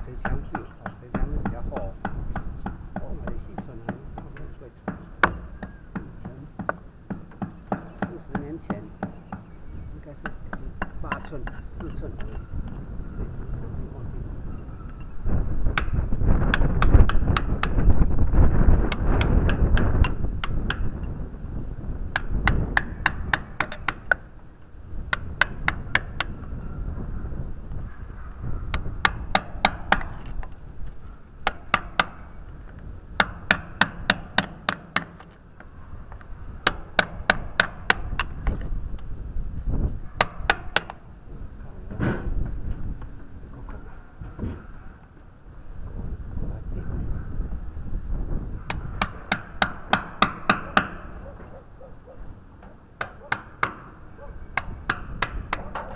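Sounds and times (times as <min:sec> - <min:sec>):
hammer striking steel chisel: 0:22.1 - 0:24.2, 0:29.0 - 0:30.3, 0:31.4 - 0:32.3, 0:33.2 - 0:35.3, 0:36.6 - 0:38.5, 0:40.2 - 0:41.0, 0:48.7 - 0:51.2, 0:53.0 - 0:55.9.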